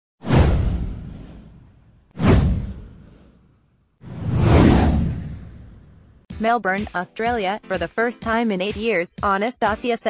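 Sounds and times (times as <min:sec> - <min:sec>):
whoosh sweeping down: 0:00.2 - 0:03.4, 0:04.0 - 0:06.2.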